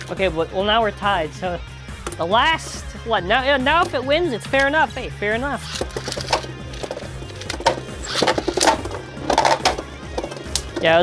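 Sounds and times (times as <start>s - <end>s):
background music: 0.0s - 11.0s
spinning tops whirring: 5.6s - 9.8s
spinning tops clacking: 5.6s - 9.9s.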